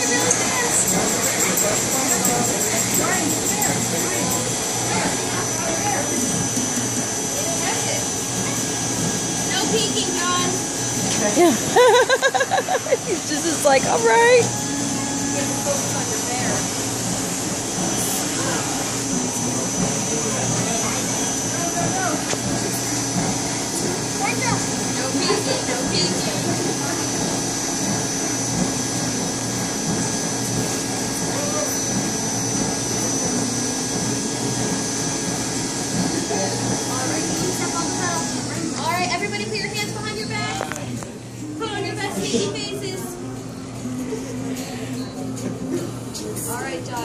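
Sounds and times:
blower motor running: 0:00.0 - 0:47.0.

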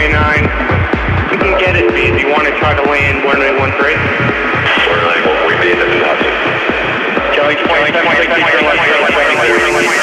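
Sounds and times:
kick and bass beat: 0:00.0 - 0:10.0
synth melody: 0:01.6 - 0:03.0, 0:05.3 - 0:07.3, 0:09.2 - 0:10.0.

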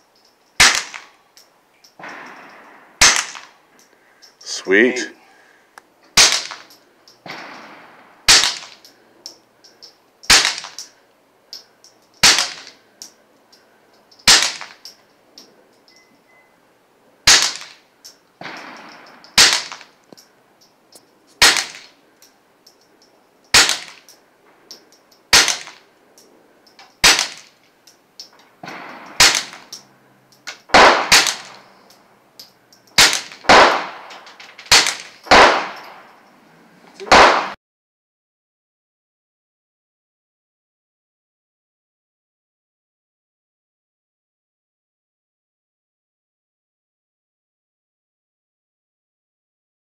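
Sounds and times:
suppressed pistol shots: 0:00.6 - 0:01.1, 0:02.0 - 0:03.6, 0:06.2 - 0:09.0, 0:10.2 - 0:10.9, 0:12.2 - 0:12.8, 0:14.2 - 0:14.8, 0:17.3 - 0:17.8, 0:18.4 - 0:19.9, 0:21.4 - 0:21.9, 0:23.5 - 0:24.1, 0:25.3 - 0:25.8, 0:27.0 - 0:27.5, 0:28.6 - 0:29.9, 0:30.6 - 0:31.7, 0:33.0 - 0:36.1, 0:37.0 - 0:37.6.

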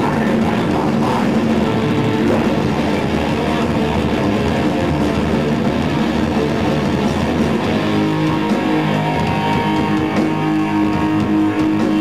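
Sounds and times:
metalcore band playing: 0:00.0 - 0:12.0.

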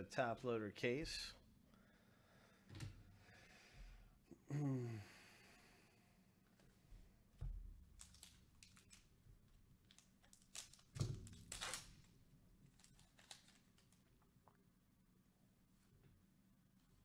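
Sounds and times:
wrapper tearing: 0:07.9 - 0:09.1, 0:09.8 - 0:14.1
wrapper rustling: 0:07.9 - 0:14.2.

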